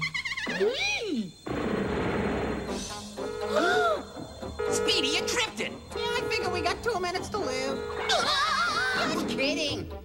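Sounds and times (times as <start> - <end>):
buzzing alarm: 2.4 - 9.1
cartoon voice crying: 8.1 - 9.2.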